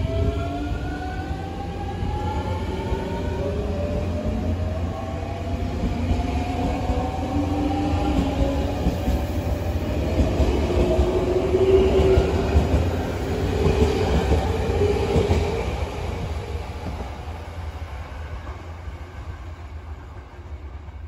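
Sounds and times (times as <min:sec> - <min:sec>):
wheels rumbling on rail: 0:00.0 - 0:21.0.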